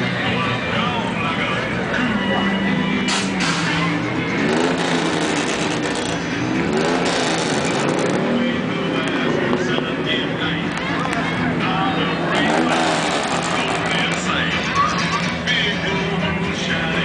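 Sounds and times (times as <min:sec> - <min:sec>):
voices: 0:00.0 - 0:07.0, 0:07.6 - 0:17.0
car engine revving: 0:00.0 - 0:17.0.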